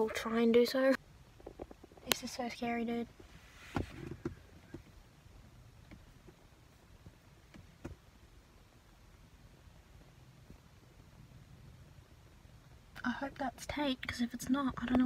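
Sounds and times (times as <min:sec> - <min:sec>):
faint low rumble: 0:00.0 - 0:15.0.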